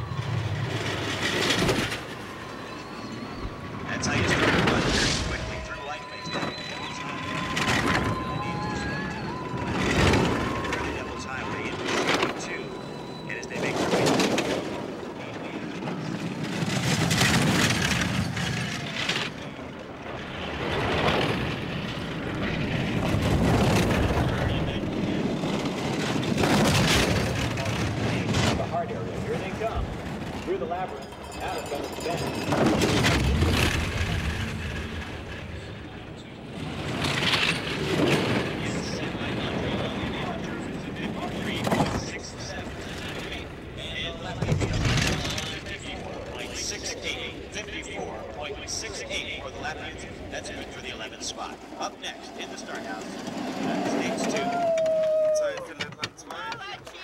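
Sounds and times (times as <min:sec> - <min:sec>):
bobsled runners rumbling on ice: 0:00.0 - 0:57.0.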